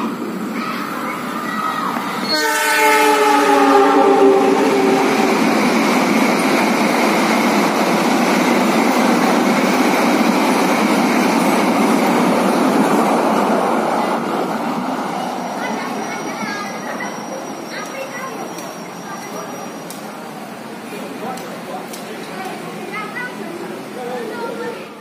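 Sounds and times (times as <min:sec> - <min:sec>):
train rumbling and rattling past: 0:00.0 - 0:25.0
locomotive horn: 0:02.3 - 0:05.3.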